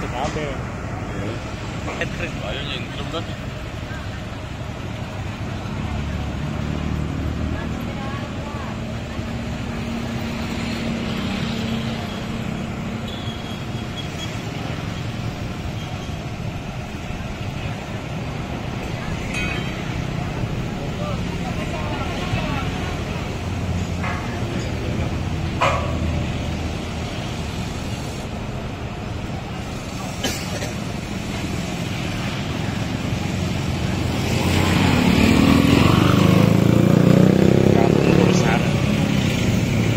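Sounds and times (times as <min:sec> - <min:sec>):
diesel engine running: 0:00.0 - 0:39.9
road traffic: 0:00.0 - 0:39.9.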